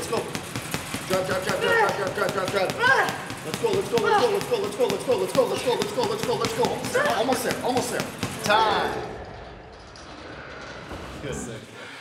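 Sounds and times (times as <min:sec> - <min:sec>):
gym background noise: 0:00.0 - 0:10.3.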